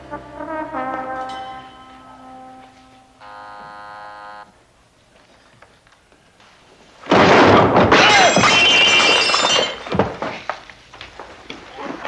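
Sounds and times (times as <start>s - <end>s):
brass music: 0.0s - 4.6s
doorbell buzzer: 3.2s - 4.5s.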